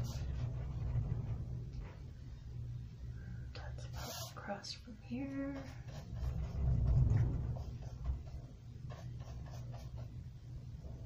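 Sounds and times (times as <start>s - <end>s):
low steady hum: 0.0s - 11.0s
woman whispering: 3.5s - 5.8s.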